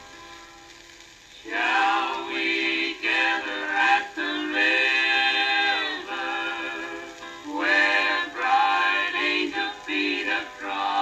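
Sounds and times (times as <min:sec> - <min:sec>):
gospel vocal group singing: 0:01.4 - 0:11.0.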